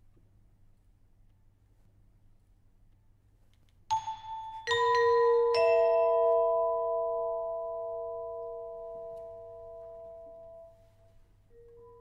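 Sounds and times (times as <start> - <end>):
mallet percussion chord ringing: 3.9 - 10.8.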